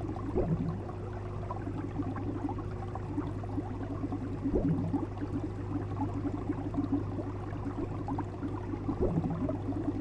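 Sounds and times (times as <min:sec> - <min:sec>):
aquarium air bubbles bubbling: 0:00.0 - 0:10.0
low hum: 0:00.0 - 0:10.0
water gurgle: 0:00.0 - 0:10.0.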